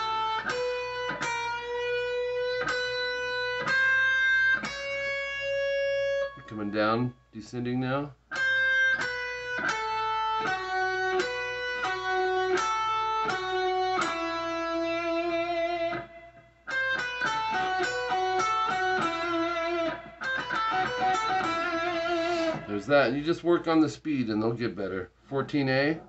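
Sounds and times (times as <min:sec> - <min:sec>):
electric guitar lead line: 0:00.0 - 0:06.8, 0:08.3 - 0:23.2.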